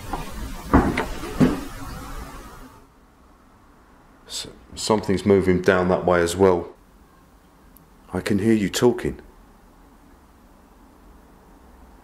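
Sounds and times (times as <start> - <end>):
dull thumps: 0.0 - 2.5.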